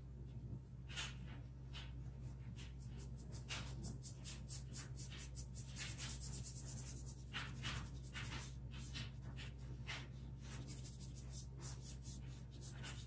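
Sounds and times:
brush scrubbing paper: 0.0s - 13.0s.

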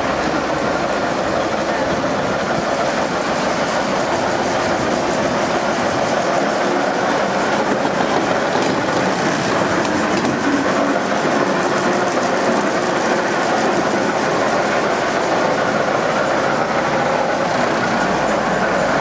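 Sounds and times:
diesel locomotive running: 0.0s - 19.0s.

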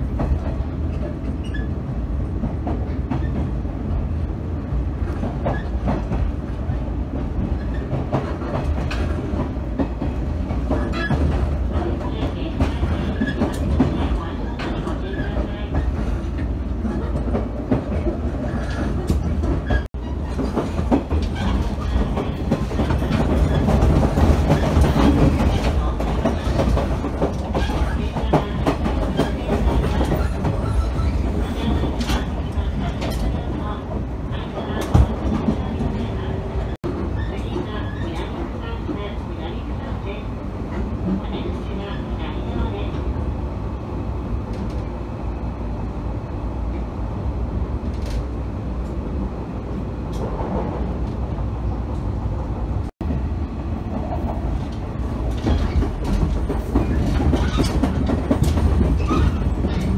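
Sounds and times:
train cabin rumble: 0.0s - 59.9s.

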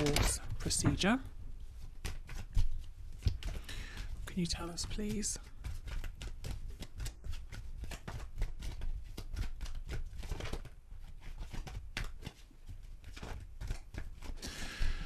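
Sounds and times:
cards being shuffled: 0.0s - 15.0s.

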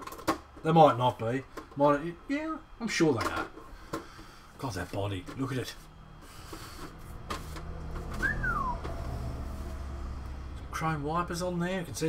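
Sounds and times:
downward sliding whistle: 8.2s - 9.3s.

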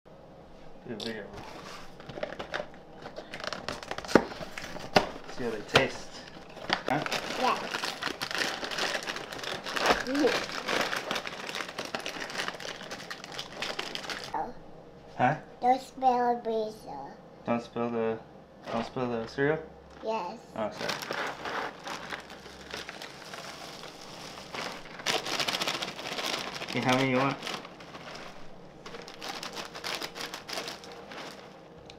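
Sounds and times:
cardboard box packaging crinkling: 1.5s - 14.4s, 20.6s - 31.6s.

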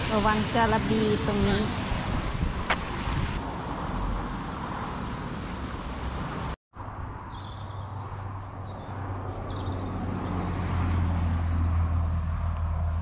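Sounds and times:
wind buffeting microphone: 0.0s - 3.4s.

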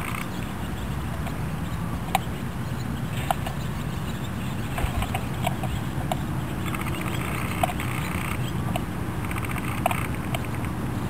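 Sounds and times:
short irregular clicks: 4.8s - 10.8s.

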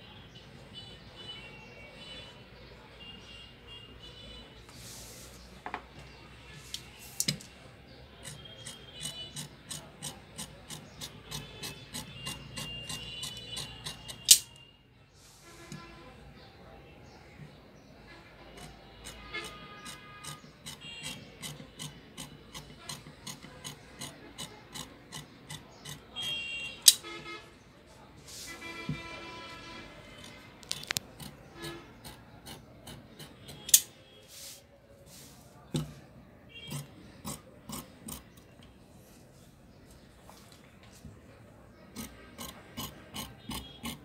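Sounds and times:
scissors snipping fabric: 8.2s - 14.5s.

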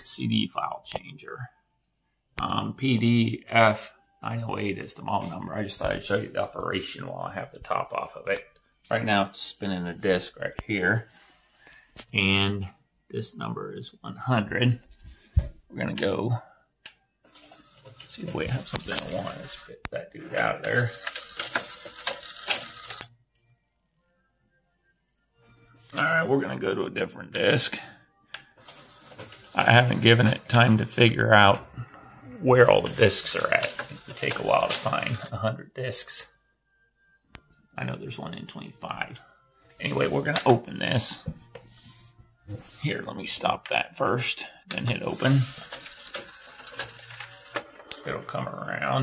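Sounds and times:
cd changer motor whine: 28.6s - 31.0s.

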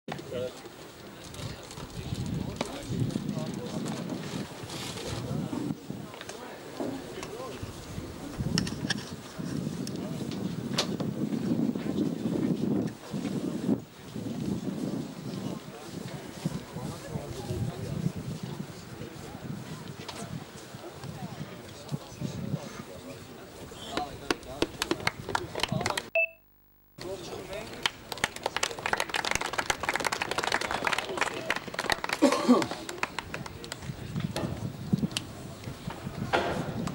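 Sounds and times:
wind buffeting microphone: 1.2s - 25.7s, 33.0s - 36.9s
voices: 12.8s - 26.2s
people clapping: 23.9s - 26.1s, 27.4s - 34.2s
short beep: 26.1s - 27.0s.

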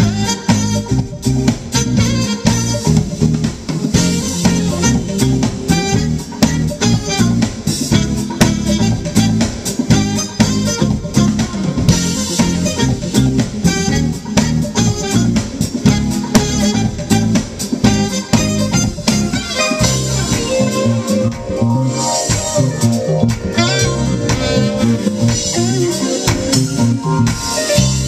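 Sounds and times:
drum kit: 0.0s - 28.0s
electric bass: 0.0s - 28.0s
electric guitar: 0.0s - 28.0s
saxophone: 0.0s - 28.0s.

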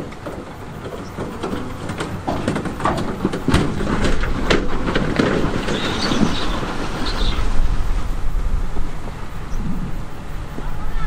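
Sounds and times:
rocks knocking and grinding: 0.0s - 9.8s
diesel engine under load: 0.0s - 11.0s
steel tracks clanking: 0.0s - 11.0s.

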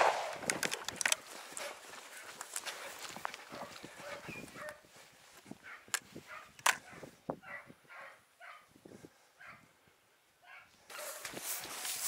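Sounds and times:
footsteps: 0.0s - 6.5s.

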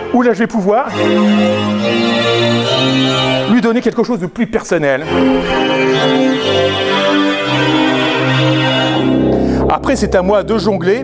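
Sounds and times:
synthesizer sustained chords: 0.0s - 3.8s, 5.0s - 11.0s.

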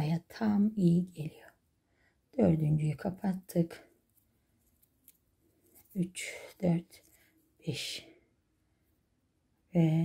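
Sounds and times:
person speaking: 0.0s - 1.5s, 2.4s - 3.9s, 5.8s - 8.2s, 9.7s - 10.0s.

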